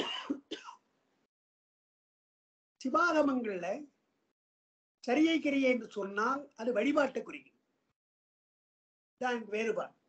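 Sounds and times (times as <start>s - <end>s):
man clearing his throat: 0.0s - 0.8s.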